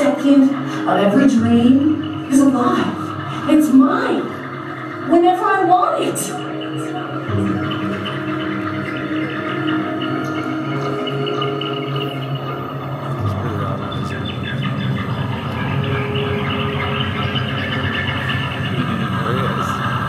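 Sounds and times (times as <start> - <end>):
sustained droning tones: 0.0 - 20.0.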